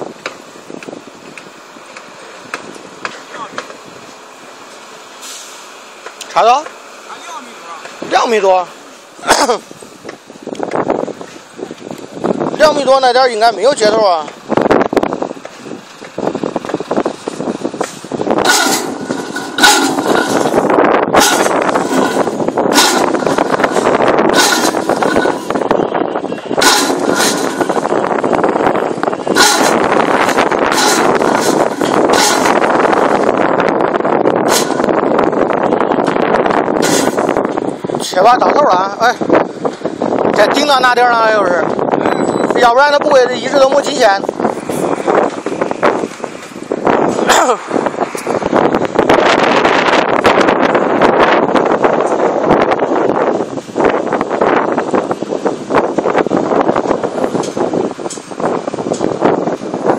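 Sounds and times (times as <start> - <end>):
sharp metallic clanks: 17.8 - 25.7, 26.5 - 28.0, 29.2 - 33.4, 34.4 - 35.0, 36.8 - 37.4.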